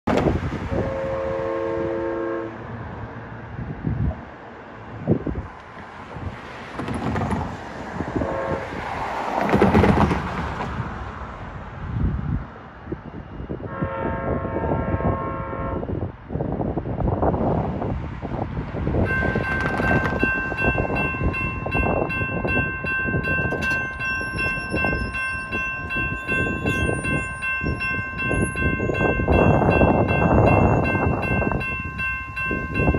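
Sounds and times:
traffic and train rumble: 0:00.0 - 0:32.9
train horn: 0:00.7 - 0:02.7, 0:08.2 - 0:08.8, 0:13.6 - 0:16.0
crossing warning bell ringing: 0:19.0 - 0:32.9.

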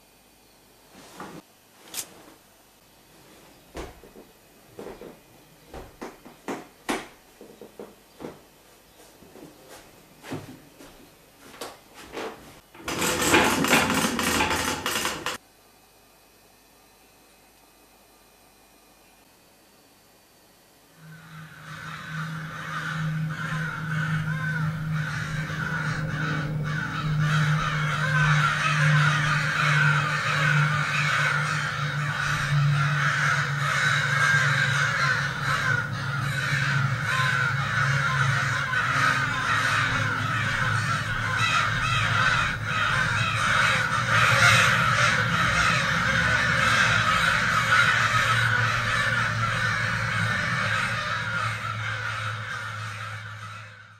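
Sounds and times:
flock of birds cawing: 0:12.9 - 0:15.4, 0:21.0 - 0:53.9
low hum: 0:20.8 - 0:53.9.

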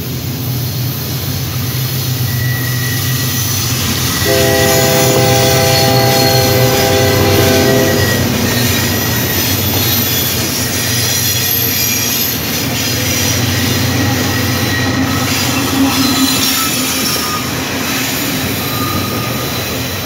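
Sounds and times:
wheels on rails: 0:00.4 - 0:20.0
locomotive horn: 0:04.2 - 0:08.4.

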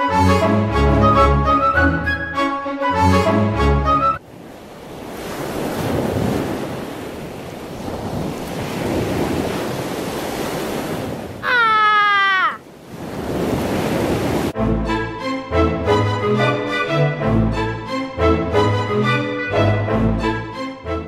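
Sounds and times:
music: 0:00.0 - 0:04.2, 0:14.6 - 0:21.0
ocean waves washing: 0:03.2 - 0:14.6
pitched cry sliding downward: 0:11.4 - 0:12.6.

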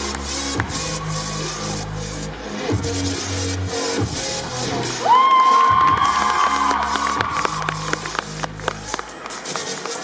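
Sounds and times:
cheer routine music: 0:00.0 - 0:10.0.

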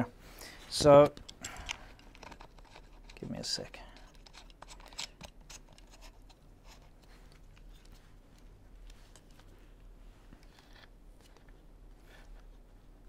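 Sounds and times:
camera handling clicks and scrapes: 0:04.0 - 0:08.0.

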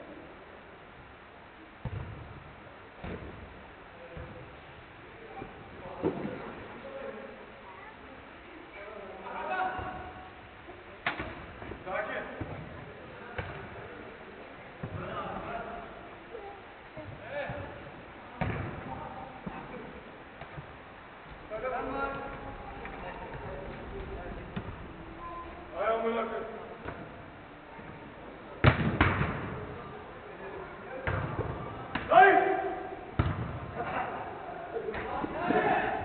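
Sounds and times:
football being kicked: 0:01.8 - 0:02.3, 0:33.2 - 0:33.7.

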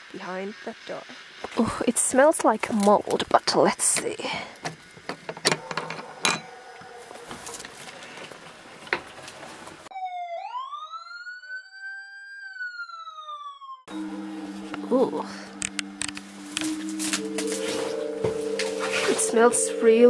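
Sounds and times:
synthetic siren-like tone: 0:09.9 - 0:20.0.

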